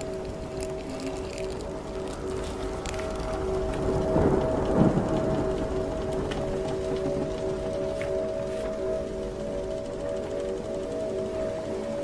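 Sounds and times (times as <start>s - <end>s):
small clicks and knocks: 0.0s - 9.0s
low two-tone drone: 0.0s - 12.0s.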